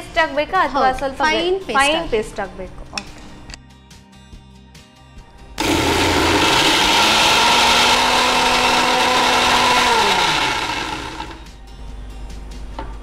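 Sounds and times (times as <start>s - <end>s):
electric mixer grinder motor: 5.6s - 11.5s.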